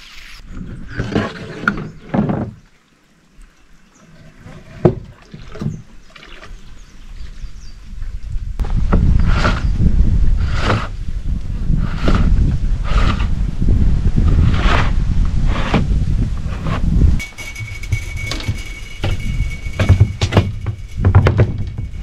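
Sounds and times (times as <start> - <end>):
wind rumble on microphone: 6.6 - 22.0.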